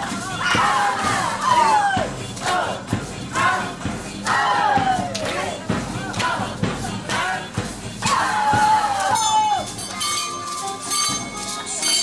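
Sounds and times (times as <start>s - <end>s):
crowd calling out: 0.0s - 9.9s
percussion band playing: 0.0s - 12.0s
audience clapping: 5.0s - 7.6s.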